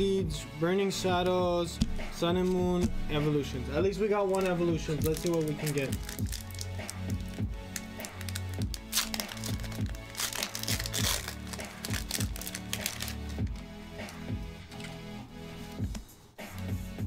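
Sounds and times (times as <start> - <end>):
background music with steady beat: 0.0 - 17.0
foil wrapper crinkling and tearing: 4.2 - 14.3.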